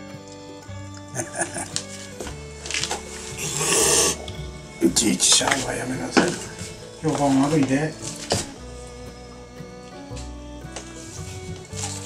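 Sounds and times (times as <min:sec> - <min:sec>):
background music: 0:00.0 - 0:12.0
cat hissing: 0:03.0 - 0:04.8.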